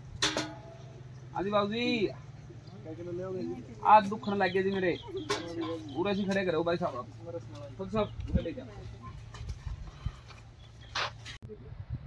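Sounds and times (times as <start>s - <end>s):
indistinct voices: 2.1s - 10.1s.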